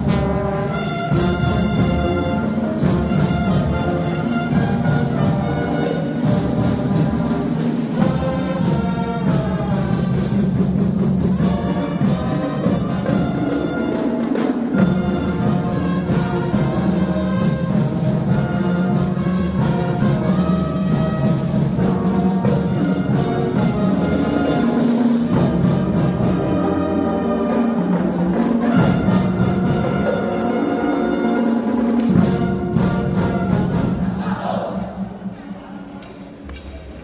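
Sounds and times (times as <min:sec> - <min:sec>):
brass instruments playing tune: 0:00.0 - 0:34.2
marching drums: 0:00.0 - 0:34.3.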